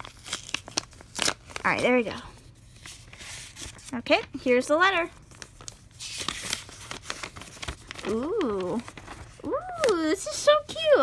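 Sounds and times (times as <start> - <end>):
paper rustling: 2.6 - 4.3, 5.2 - 11.0.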